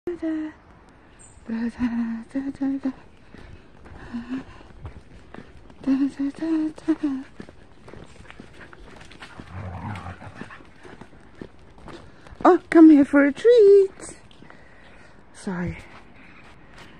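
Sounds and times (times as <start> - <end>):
footsteps on tarmac: 0.9 - 16.9
woman speaking: 1.5 - 3.0, 5.8 - 7.3, 12.4 - 14.3, 15.4 - 15.9
dogs trotting: 3.0 - 15.1.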